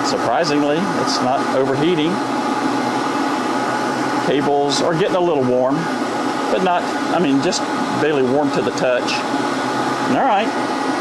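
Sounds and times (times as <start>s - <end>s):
heat gun fan whirring: 0.0s - 11.0s.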